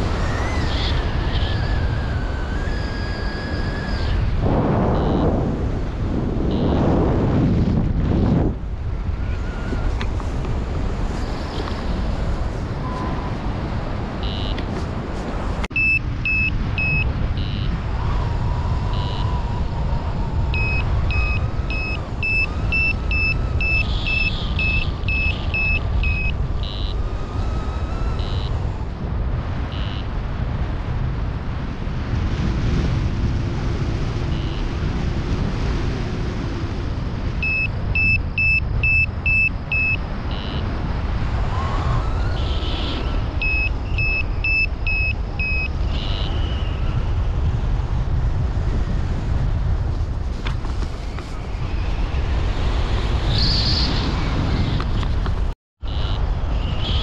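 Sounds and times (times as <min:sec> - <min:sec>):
wind on microphone: 0:00.0 - 0:57.0
variometer short beeps: 0:04.9 - 0:05.4, 0:06.5 - 0:06.8, 0:14.2 - 0:14.7, 0:15.7 - 0:17.8, 0:18.9 - 0:19.3, 0:20.5 - 0:28.6, 0:29.7 - 0:30.1, 0:34.3 - 0:34.7, 0:37.4 - 0:40.7, 0:43.4 - 0:46.6.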